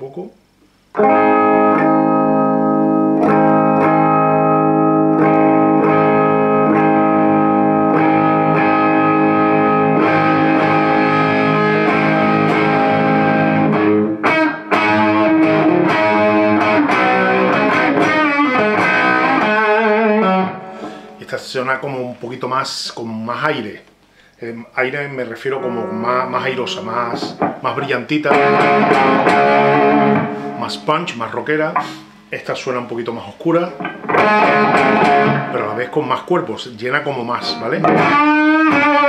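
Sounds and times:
electric guitar chords: 0.9s - 21.2s, 25.6s - 32.4s, 33.7s - 36.2s, 37.2s - 39.0s.

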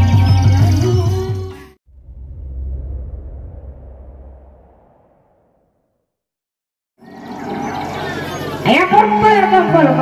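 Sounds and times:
crowd noise: 7.1s - 10.0s.

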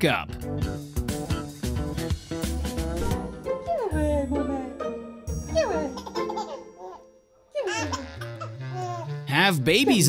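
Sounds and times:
background music: 0.0s - 10.0s
baby laughing and squealing: 7.6s - 9.1s
adult making playful sounds: 9.6s - 10.0s.

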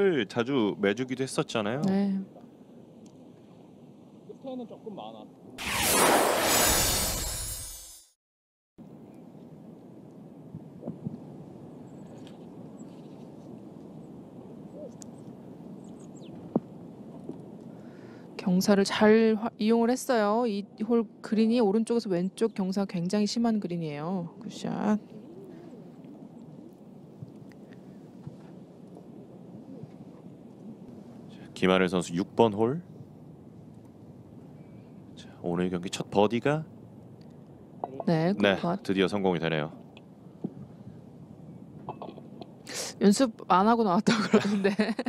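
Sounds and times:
outdoor ambience: 0.0s - 8.2s, 8.8s - 45.0s
whoosh transition effect: 5.6s - 8.1s.

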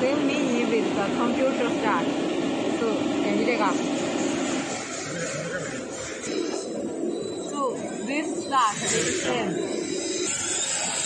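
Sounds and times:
cutting machine running: 0.0s - 11.0s
whining glide: 4.0s - 11.0s.

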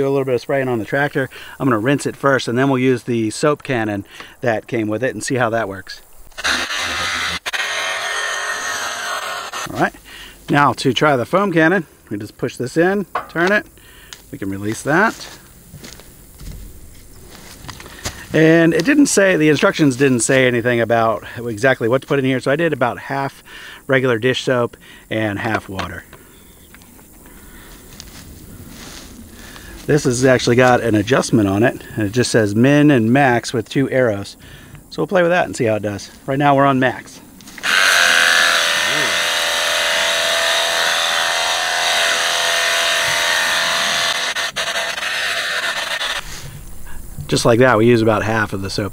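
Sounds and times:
low outdoor background: 0.0s - 48.9s
power washer spraying water: 37.6s - 46.5s.

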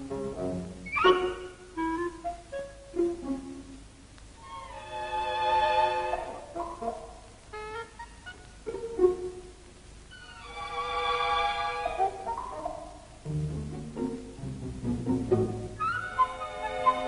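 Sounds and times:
orchestral strings music: 0.0s - 3.8s, 4.4s - 8.1s, 8.7s - 9.5s, 10.1s - 17.0s.

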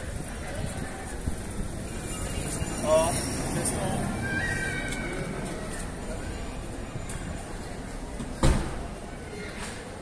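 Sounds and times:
people talking passing by: 0.0s - 10.0s
loud high rising cry: 4.1s - 5.4s.

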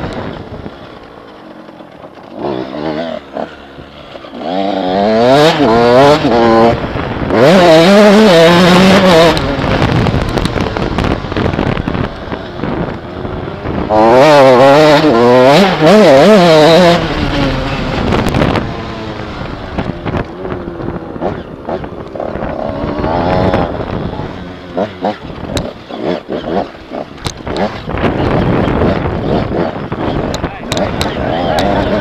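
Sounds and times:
motorcycle engine revving: 0.0s - 32.0s.

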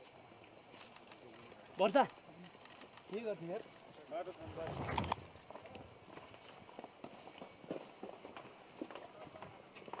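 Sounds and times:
footsteps on paved path: 4.8s - 10.0s.

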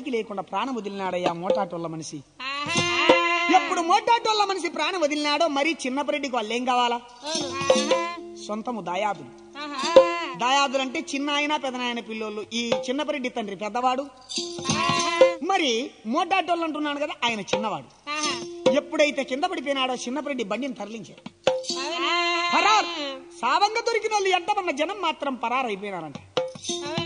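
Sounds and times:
person singing wavering phrase: 2.4s - 4.1s, 7.2s - 8.3s, 9.6s - 10.8s, 21.7s - 23.4s.

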